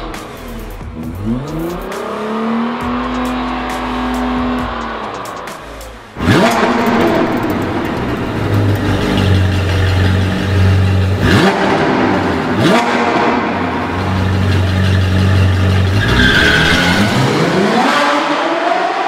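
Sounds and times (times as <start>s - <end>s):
sports car engine revving: 0.0s - 19.0s.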